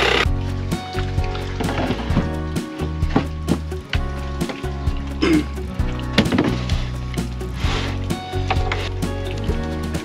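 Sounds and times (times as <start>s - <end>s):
music with steady beat: 0.2s - 10.0s.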